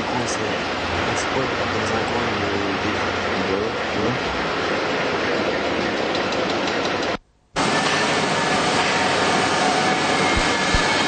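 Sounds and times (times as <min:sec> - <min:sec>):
factory machinery: 0:00.0 - 0:11.0.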